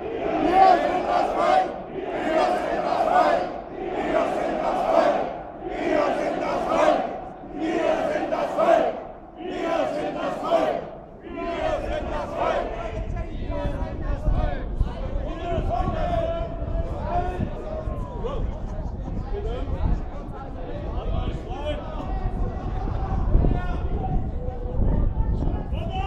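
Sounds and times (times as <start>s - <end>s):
crowd chanting in unison: 0.0s - 18.0s.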